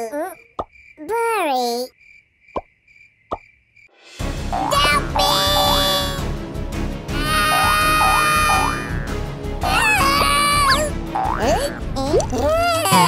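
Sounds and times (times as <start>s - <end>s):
squeaky cartoon voice: 1.0s - 1.9s, 4.6s - 6.2s, 11.5s - 13.0s
bouncy children's music: 4.5s - 6.3s, 7.2s - 13.0s.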